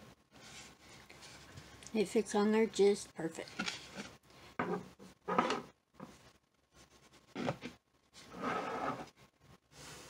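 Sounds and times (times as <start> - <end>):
gourd scraping on lamp base: 3.6 - 5.7, 7.3 - 9.1.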